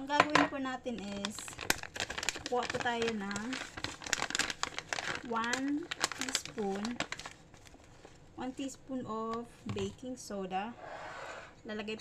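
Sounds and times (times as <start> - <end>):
plastic packet crinkling: 0.9 - 8.8.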